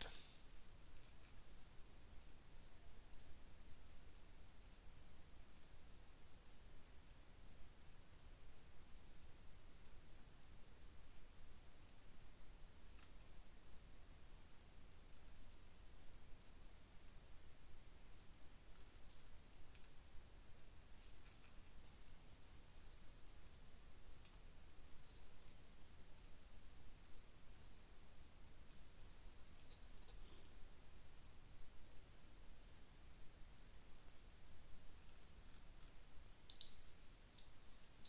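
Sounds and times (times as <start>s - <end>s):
low steady hum: 0.0s - 38.0s
computer mouse clicks: 0.7s - 2.4s, 3.1s - 3.4s, 4.0s - 4.9s, 5.6s - 5.8s, 6.4s - 7.2s, 8.1s - 8.3s, 11.1s - 12.0s, 13.0s - 13.3s, 14.5s - 15.7s, 16.4s - 17.2s, 18.2s - 18.4s, 19.2s - 22.6s, 23.4s - 25.6s, 26.2s - 26.4s, 27.0s - 27.3s, 28.7s - 30.6s, 31.2s - 32.1s, 32.7s - 32.9s, 34.1s - 34.3s, 35.0s - 37.5s.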